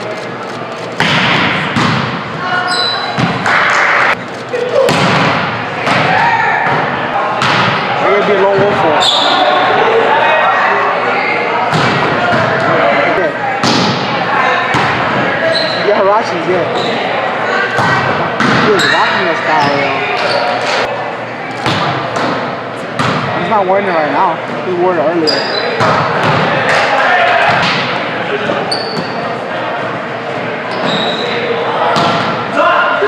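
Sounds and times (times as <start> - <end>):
volleyball being struck: 1.0 - 2.2, 4.8 - 7.9, 21.6 - 23.3.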